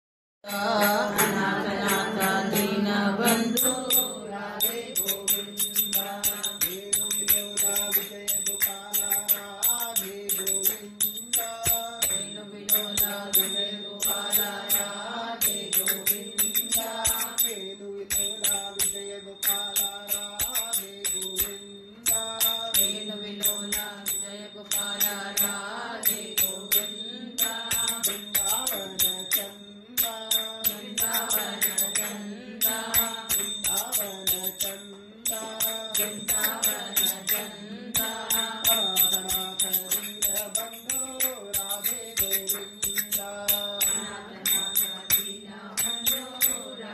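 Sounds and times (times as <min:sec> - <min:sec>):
voices chanting: 0:00.5 - 0:06.5, 0:30.7 - 0:34.5, 0:35.4 - 0:39.7, 0:43.8 - 0:46.9
metallic percussion strikes: 0:00.5 - 0:46.9
person chanting: 0:00.5 - 0:46.9.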